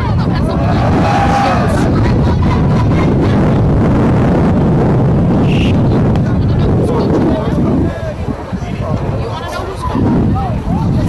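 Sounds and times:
crowd voices: 0:00.0 - 0:11.0
wind buffeting microphone: 0:00.0 - 0:11.0.

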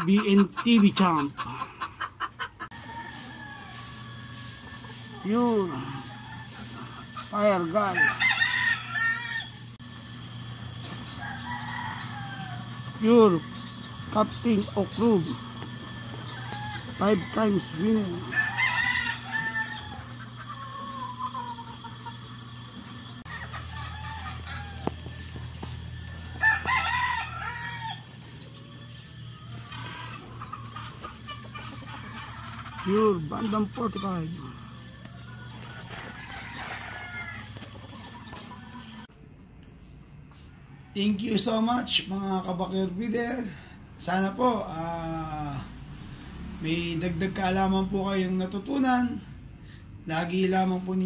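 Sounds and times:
roosters crowing: 0:00.0 - 0:39.2, 0:39.9 - 0:51.0.

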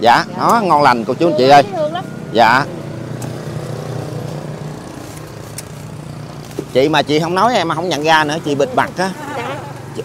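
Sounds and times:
scooter engine idling: 0:00.0 - 0:10.0.

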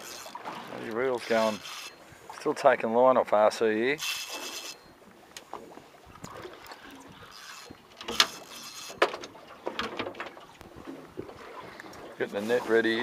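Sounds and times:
faint wind: 0:00.0 - 0:13.0
water noise: 0:00.0 - 0:13.0
fishing reel clicks and knocks: 0:04.0 - 0:04.8, 0:06.2 - 0:09.9.

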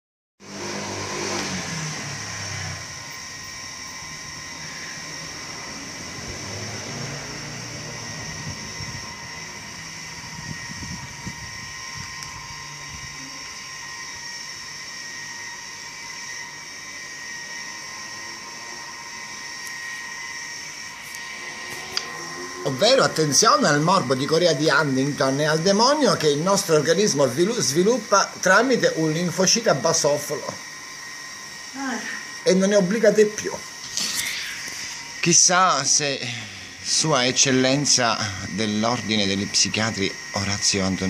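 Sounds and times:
high whining tones: 0:00.4 - 0:41.0
machine hum: 0:00.4 - 0:41.0.

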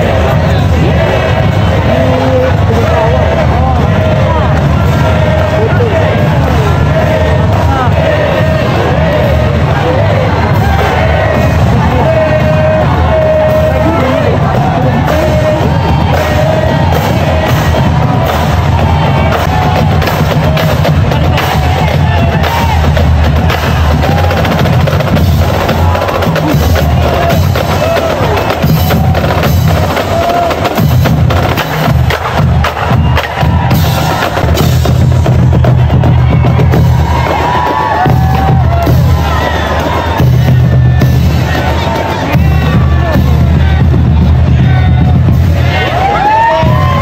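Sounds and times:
crowd voices: 0:00.0 - 0:47.0
loud percussive music: 0:00.0 - 0:47.0.

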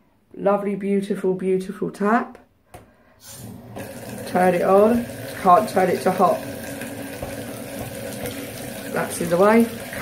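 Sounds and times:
tap pouring water into a bath: 0:03.2 - 0:10.0.

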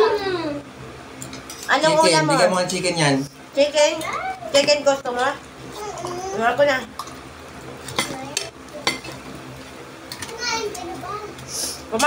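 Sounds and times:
dishes and cutlery clicking: 0:07.8 - 0:09.2.

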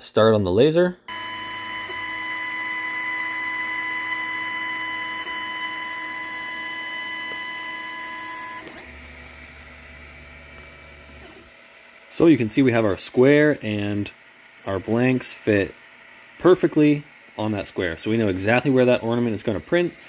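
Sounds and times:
laser engraver high-pitched whine: 0:01.1 - 0:20.0.

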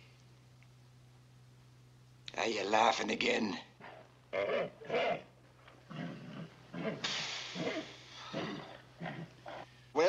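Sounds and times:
horse groaning: 0:03.9 - 0:05.3, 0:05.9 - 0:09.7.

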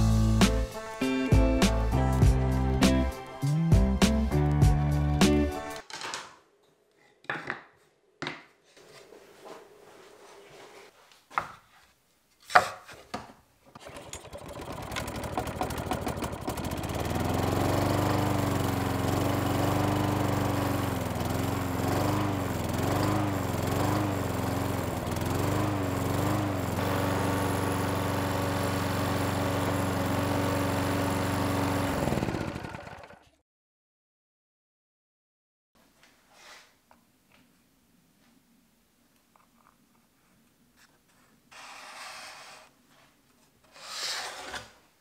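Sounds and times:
drill press motor running: 0:13.8 - 0:33.4.

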